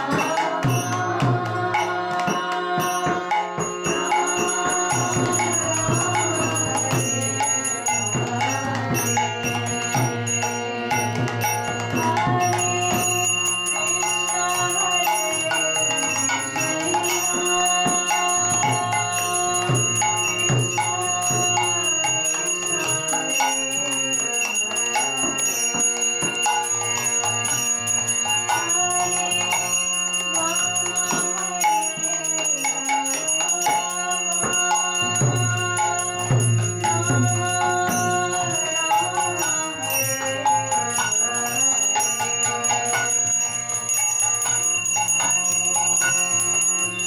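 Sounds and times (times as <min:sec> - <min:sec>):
devotional music with drone: 0:00.0 - 0:47.0
drum accompaniment: 0:00.0 - 0:47.0
hand bell ringing: 0:00.0 - 0:47.0.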